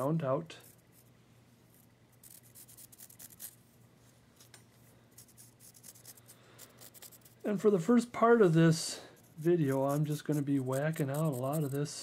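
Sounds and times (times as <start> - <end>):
pencil scratching on wood: 2.2 - 3.6, 5.2 - 7.4, 9.2 - 12.0.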